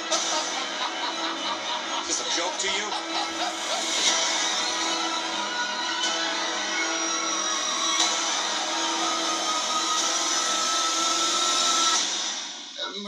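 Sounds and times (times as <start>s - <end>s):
dramatic trailer music: 0.0s - 12.8s.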